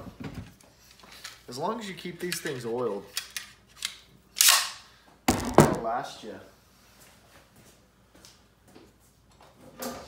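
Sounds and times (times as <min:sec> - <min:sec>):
nail gun shot: 0:05.3 - 0:05.9.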